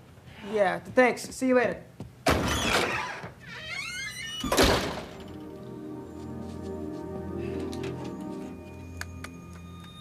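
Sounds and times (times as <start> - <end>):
door banging shut: 2.2 - 5.3
door squeak: 2.3 - 5.4
background music: 4.7 - 10.0.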